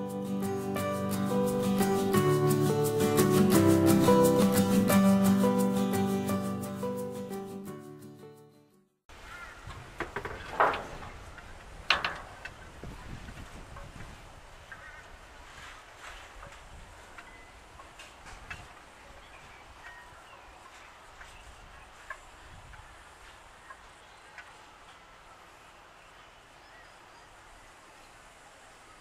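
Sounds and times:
birds calling: 0:09.1 - 0:12.9, 0:14.6 - 0:15.2.

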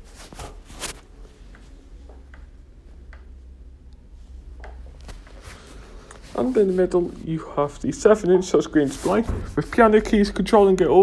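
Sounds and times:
soft rustling: 0:00.0 - 0:03.0, 0:04.1 - 0:11.0.

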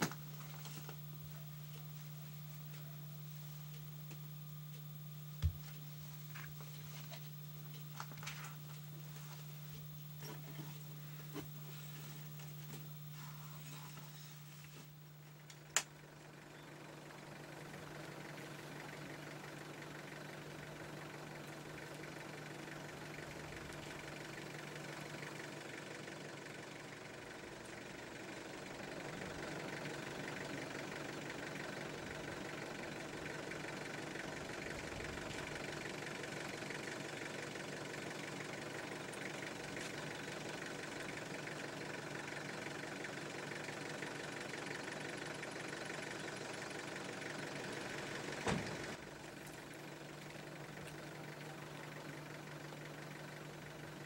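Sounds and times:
truck engine idling: 0:00.0 - 0:54.0.

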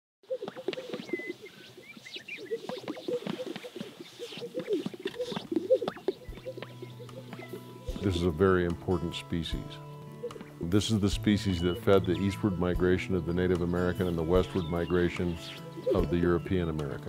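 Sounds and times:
grouse air sac popping: 0:00.3 - 0:08.8
music: 0:06.1 - 0:17.0.

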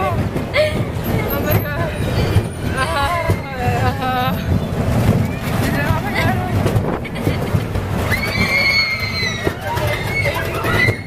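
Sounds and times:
steady low rumble: 0:00.0 - 0:08.4.

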